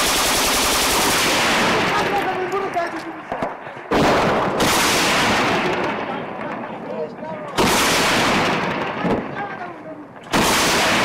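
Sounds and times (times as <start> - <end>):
heavy gunshots with echo: 0.0 - 2.4, 3.9 - 6.6, 7.6 - 9.5, 10.3 - 11.0.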